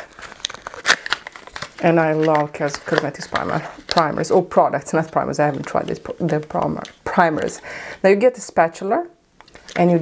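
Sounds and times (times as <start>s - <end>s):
packaging crinkling and tearing: 0.0s - 4.4s.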